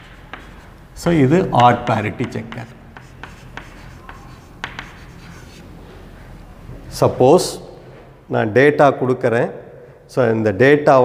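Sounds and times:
chalk scratching on chalkboard: 0.0s - 5.6s
chalk tapping on chalkboard: 0.0s - 5.6s.

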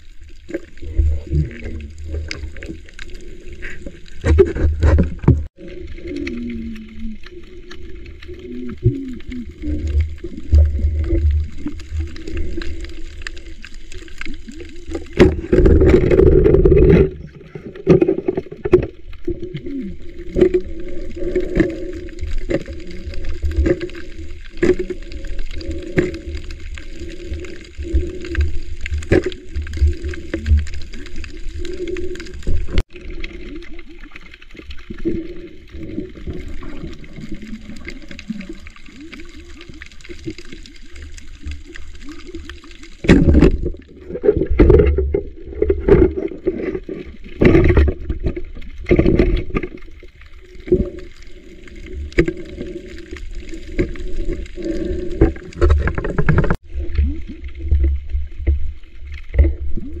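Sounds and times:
muffled underwater water gurgling: 0.0s - 60.0s
water sloshing and churning: 0.0s - 60.0s.

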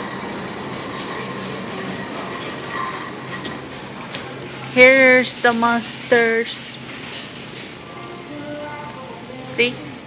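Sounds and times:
steady rumbling background noise: 0.0s - 10.0s.

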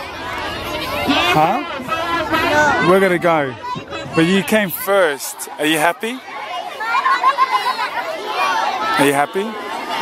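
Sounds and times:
children's voices chattering: 0.0s - 10.0s.

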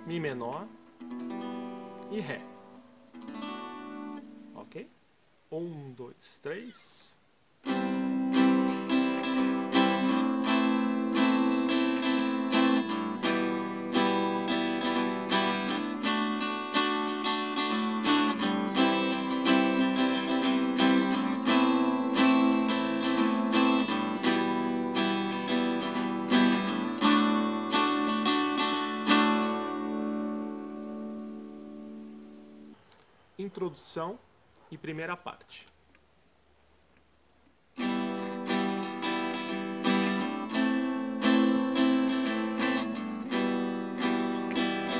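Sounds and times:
acoustic guitar strumming chords: 0.0s - 5.0s, 7.6s - 32.9s, 37.8s - 44.9s.

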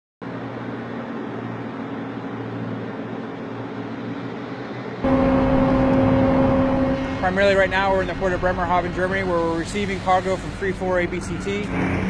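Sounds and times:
engines humming: 0.2s - 12.0s
loud engine drone: 0.3s - 12.0s.

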